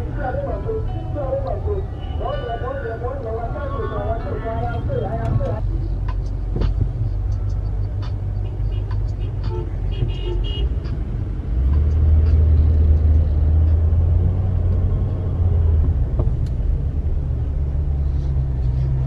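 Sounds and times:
car engine rumble inside cabin: 0.0 - 19.0.

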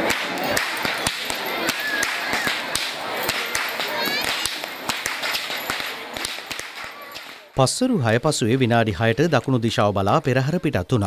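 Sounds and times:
whips cracking: 0.0 - 7.5
crowd chatter: 0.0 - 11.0.

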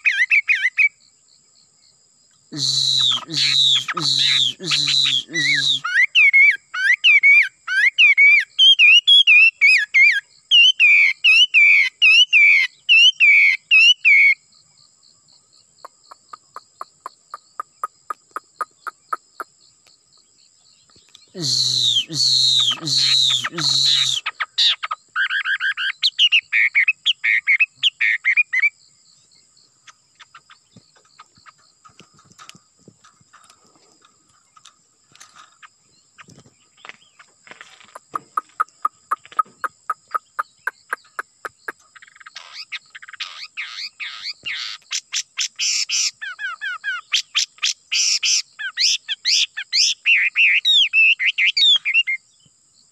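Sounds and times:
songbird singing whistled notes: 0.0 - 1.2, 2.5 - 14.9, 15.6 - 32.6, 34.4 - 52.5
high insect drone: 0.9 - 6.0, 14.1 - 25.1.

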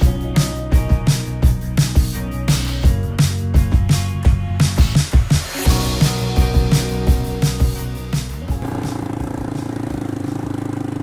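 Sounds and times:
background music with drum beat: 0.0 - 11.0
small atv engine idling: 8.6 - 11.0.

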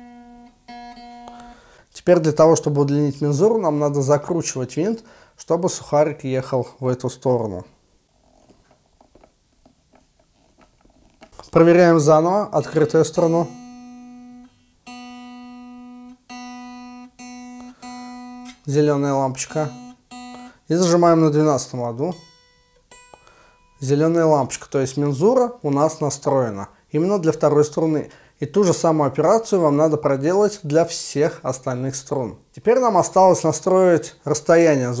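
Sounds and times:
electric guitar string plucked: 0.0 - 1.6, 12.6 - 20.6.

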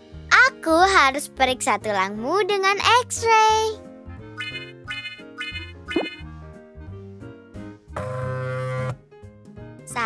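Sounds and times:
light children's music: 0.0 - 10.0.

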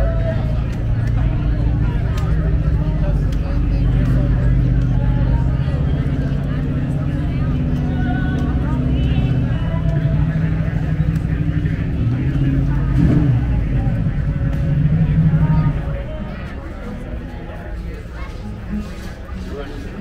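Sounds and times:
car engines running low speed: 0.0 - 20.0
faint crowd voices: 0.0 - 20.0.

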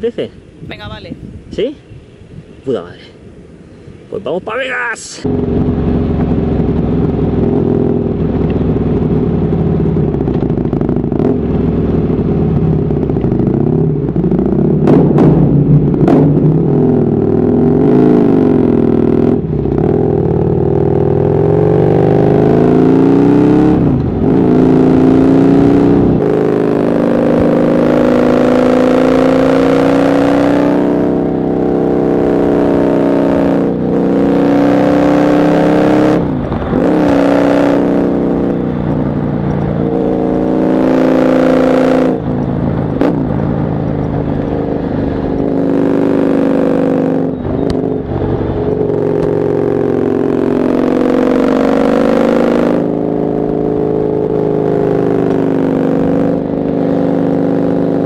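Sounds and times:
motorcycle engine revving: 5.2 - 58.0.

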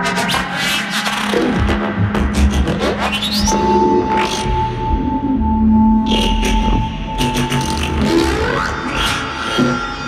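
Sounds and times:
modular synthesizer electronic music: 0.0 - 10.0.

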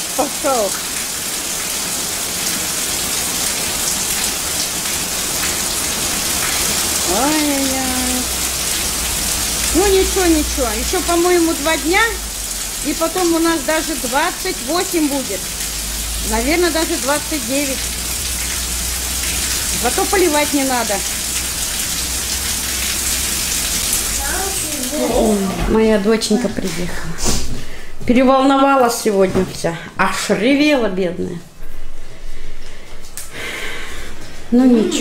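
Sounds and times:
rain on wet paving: 0.0 - 25.3.

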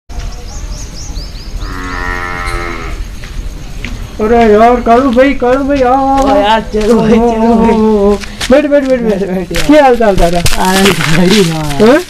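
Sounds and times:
small birds chirping: 0.1 - 8.4
cow mooing: 1.6 - 3.0.

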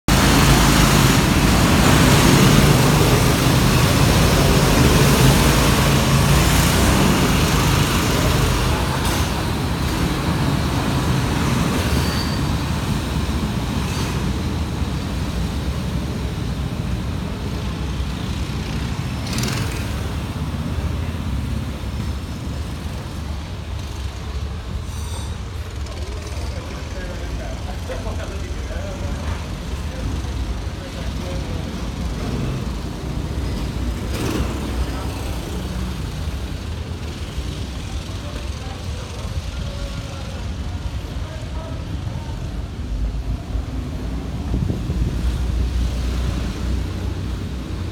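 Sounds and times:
distant karts engine noise: 0.1 - 47.9
go-kart engine running: 0.1 - 47.9.

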